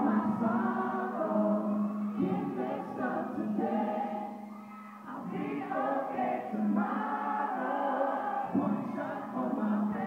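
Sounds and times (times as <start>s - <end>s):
man singing into a microphone: 8.5s - 10.0s.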